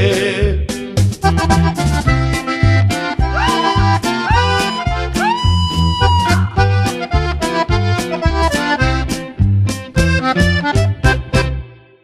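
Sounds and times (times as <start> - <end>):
bouncing bass line: 0.0 - 11.7
accordion melody: 1.0 - 12.0.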